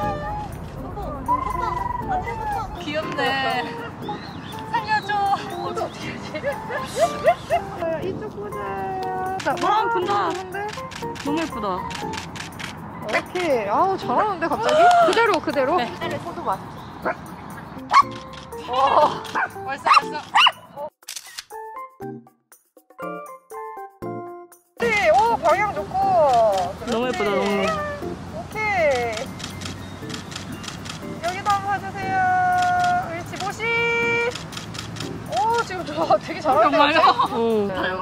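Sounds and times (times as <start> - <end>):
camera shutter click: 21.0 - 21.6.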